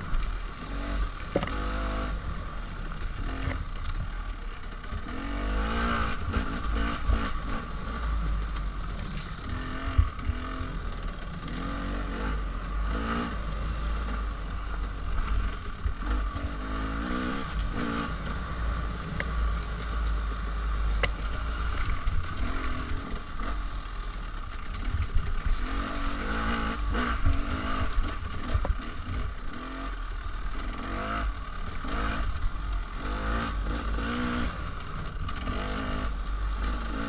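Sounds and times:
dirt bike engine revving: 0.0s - 4.0s, 4.7s - 37.0s.

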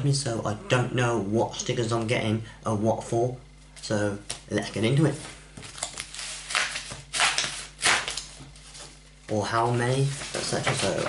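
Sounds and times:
envelope paper ripping: 5.7s - 8.8s.

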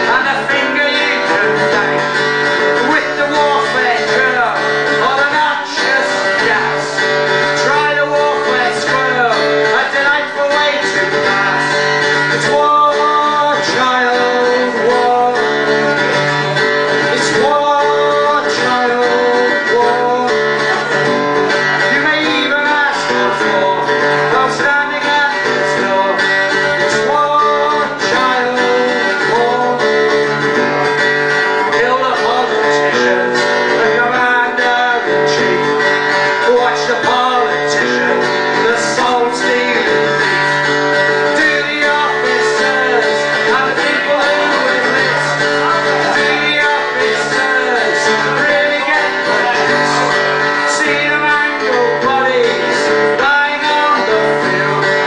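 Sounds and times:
guitar strumming: 0.0s - 55.0s
man singing into microphone: 0.0s - 55.0s.

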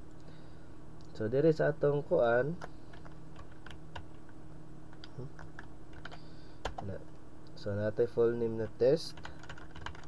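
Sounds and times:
faint low hum: 0.0s - 10.0s
computer keyboard key clicks: 9.2s - 10.0s.

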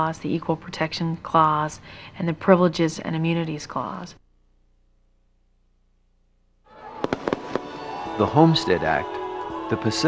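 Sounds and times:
fireworks bangs: 6.7s - 8.6s
music: 6.7s - 10.0s
burst of noise: 6.9s - 8.1s.

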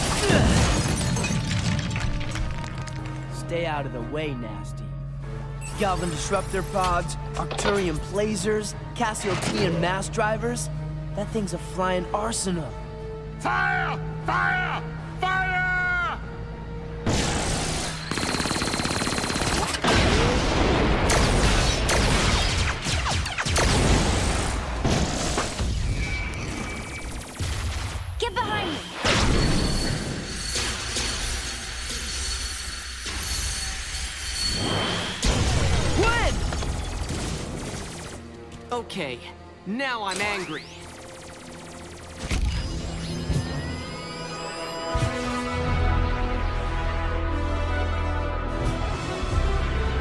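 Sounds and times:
explosions: 19.8s - 28.2s.

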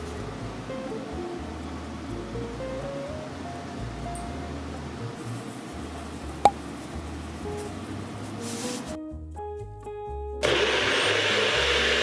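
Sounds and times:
blender running: 10.4s - 12.0s.

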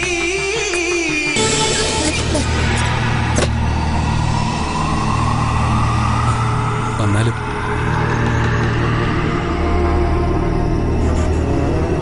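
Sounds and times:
dramatic background score: 0.0s - 12.0s.

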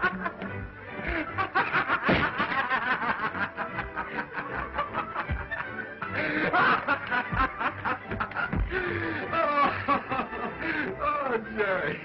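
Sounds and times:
people laughing heartily: 0.0s - 12.0s.

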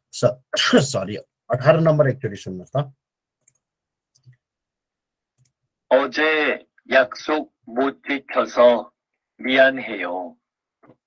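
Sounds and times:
person speaking: 5.5s - 10.4s.

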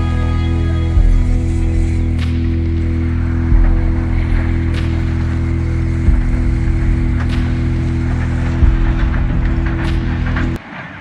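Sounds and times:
excavator diesel engine running: 0.0s - 10.7s.

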